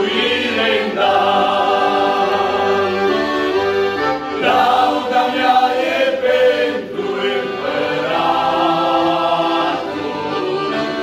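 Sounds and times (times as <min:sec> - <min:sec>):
male vocal group singing harmony: 0:00.0 - 0:03.4, 0:04.2 - 0:11.0
accordion: 0:00.0 - 0:11.0.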